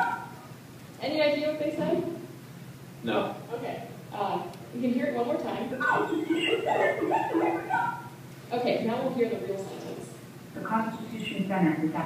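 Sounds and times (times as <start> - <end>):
sine-wave speech tones: 5.7 - 8.2, 10.8 - 11.5.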